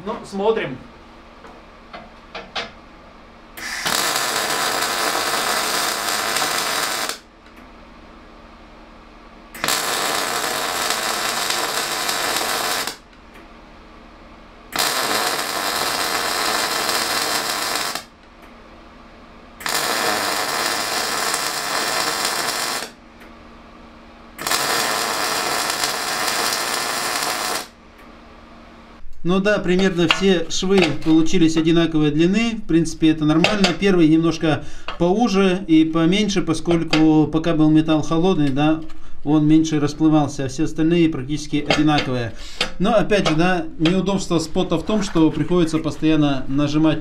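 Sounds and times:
welding arc sizzling: 3.6s - 7.3s, 9.6s - 13.1s, 14.7s - 18.2s, 19.6s - 23.0s, 24.3s - 27.8s.

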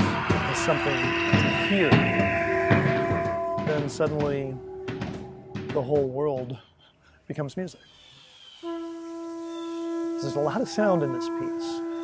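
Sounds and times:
conch shell trumpet note: 0.0s - 5.2s, 8.6s - 12.0s.

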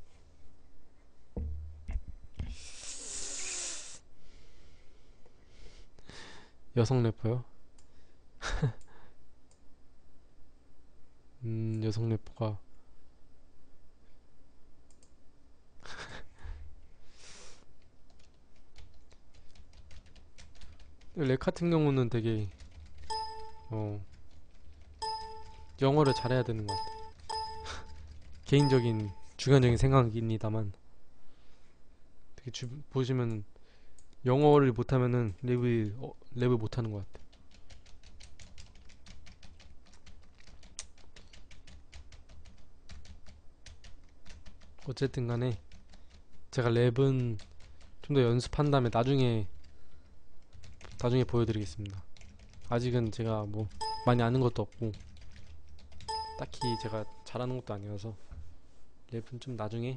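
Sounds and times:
typing on computer keyboard: 18.1s - 21.2s, 22.4s - 29.3s, 37.2s - 44.9s, 45.6s - 46.4s, 50.4s - 51.1s, 52.2s - 57.2s.

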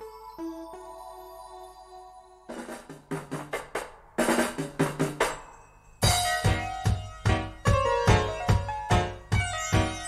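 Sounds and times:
drum kit fills: 2.5s - 10.0s.

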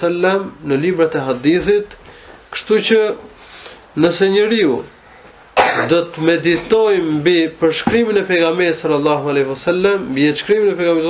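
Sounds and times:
man lecturing: 0.0s - 3.3s, 3.9s - 5.0s, 5.6s - 11.0s
sharp breath: 3.4s - 3.9s.

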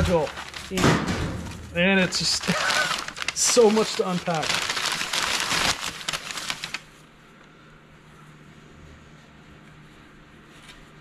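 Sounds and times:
newspaper rustling and crinkling: 0.0s - 7.0s.

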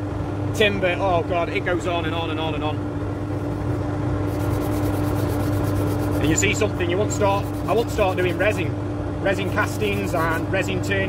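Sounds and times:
wood lathe humming: 4.3s - 8.5s
rasping sanding: 4.3s - 8.6s, 9.3s - 10.5s.

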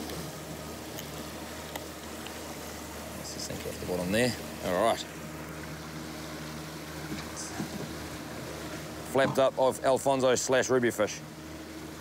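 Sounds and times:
outboard engine idling: 0.0s - 12.0s
wind and water hiss: 0.0s - 12.0s.

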